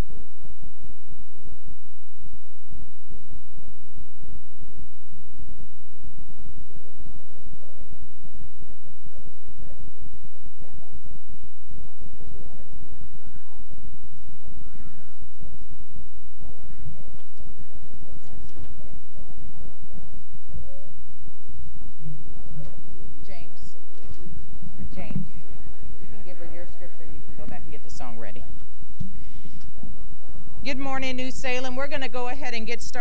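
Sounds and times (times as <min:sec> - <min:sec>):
faint voices talking: 0:00.0 - 0:33.0
steady low hum: 0:00.0 - 0:33.0
woman speaking over loudspeaker: 0:23.2 - 0:23.8, 0:24.6 - 0:28.6, 0:30.7 - 0:33.0.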